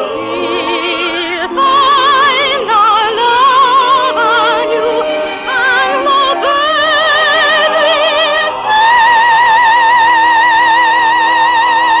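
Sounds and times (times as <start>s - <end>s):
musical accompaniment: 0.0s - 12.0s
operatic singing with vibrato: 0.0s - 12.0s.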